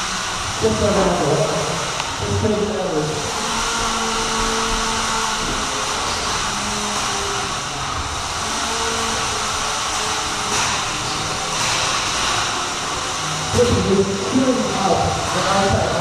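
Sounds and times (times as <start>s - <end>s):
fan-like whirring: 0.0s - 16.0s.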